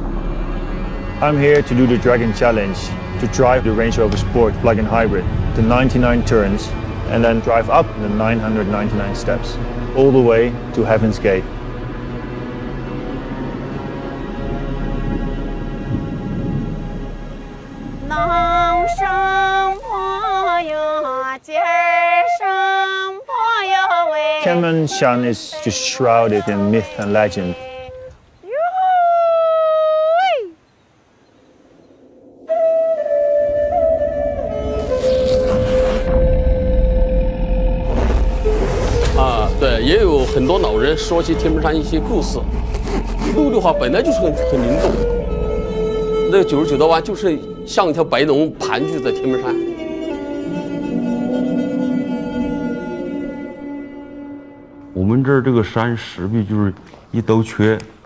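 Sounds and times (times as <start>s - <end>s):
background music with held notes: 0.0s - 28.2s, 32.5s - 38.1s, 38.9s - 55.1s
woman singing folk melody: 18.1s - 24.7s, 25.5s - 29.2s
person speaking: 24.4s - 27.8s, 39.2s - 45.0s.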